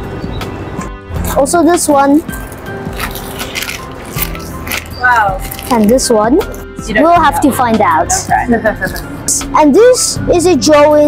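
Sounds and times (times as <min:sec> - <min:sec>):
background music: 0:00.0 - 0:11.0
plastic bag crinkling: 0:02.4 - 0:06.1.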